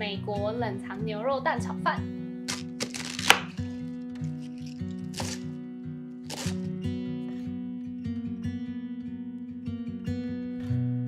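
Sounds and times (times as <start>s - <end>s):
acoustic guitar music: 0.0s - 11.0s
knife cutting cabbage on board: 2.5s - 3.6s, 4.2s - 5.5s, 6.3s - 6.7s.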